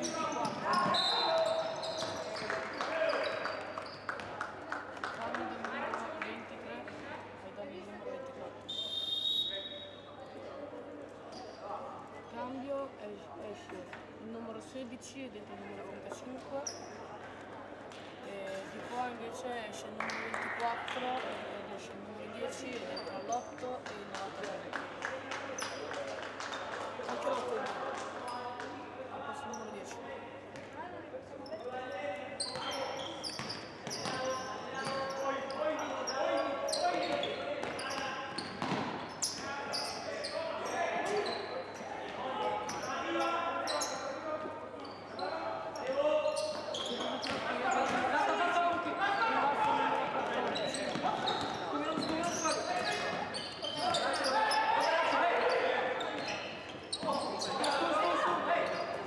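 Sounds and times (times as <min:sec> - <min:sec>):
basketball bouncing on court: 0:37.1 - 0:39.0.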